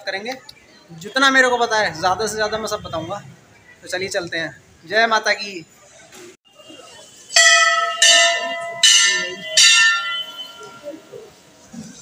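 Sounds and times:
temple bell ringing: 7.2s - 11.3s.

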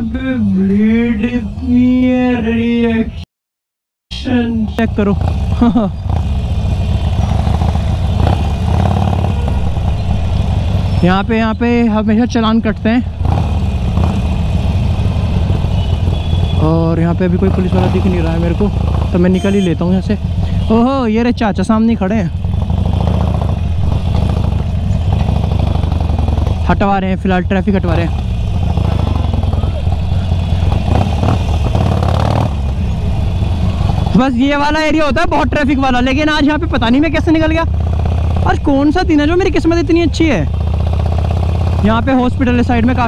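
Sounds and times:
busy street noise: 0.0s - 3.2s, 4.1s - 43.0s
motorcycle engine running: 4.3s - 43.0s.

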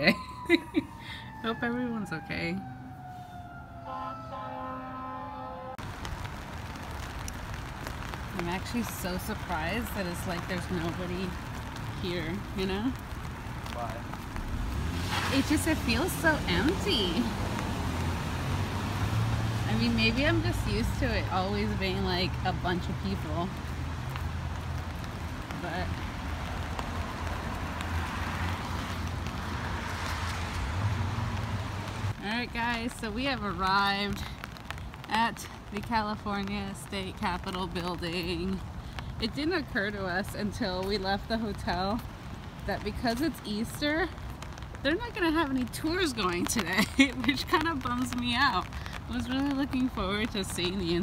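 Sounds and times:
emergency sirens wailing: 0.0s - 6.7s, 8.7s - 23.7s
street noise: 0.0s - 51.0s.

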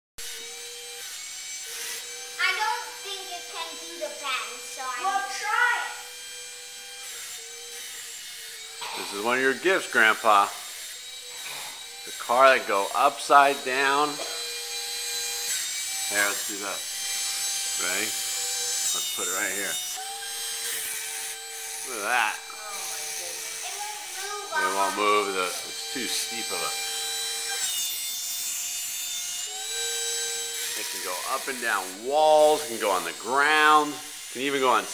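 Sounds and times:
toy car fan whirring: 0.2s - 34.9s.

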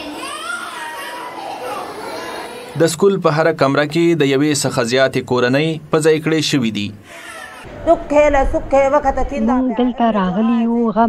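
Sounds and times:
children's chatter in echoing room: 0.0s - 3.1s, 7.1s - 11.0s.

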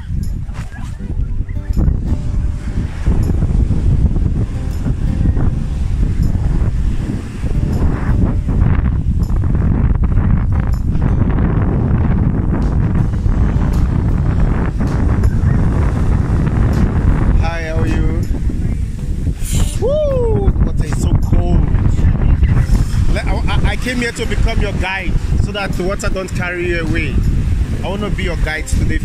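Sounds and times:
surf washing onto beach: 0.0s - 29.0s
wind buffeting microphone: 0.0s - 29.0s.

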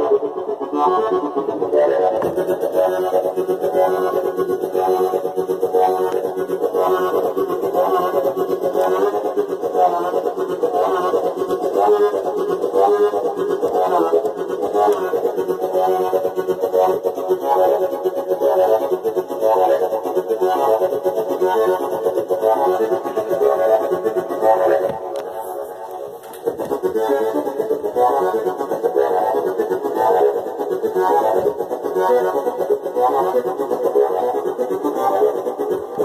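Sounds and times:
synthesizer pulsing pad: 0.0s - 36.0s.

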